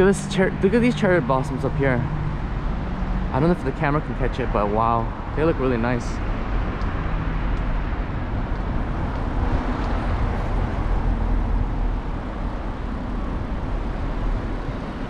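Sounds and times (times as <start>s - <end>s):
car passing: 0.0s - 15.0s
road traffic: 0.0s - 15.0s
wind rush on microphone: 0.7s - 15.0s.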